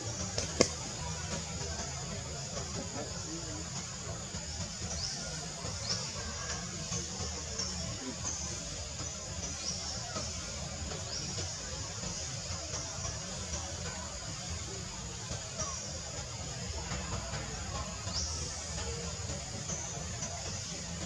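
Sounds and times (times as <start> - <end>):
outdoor hiss and rumble: 0.0 - 21.0.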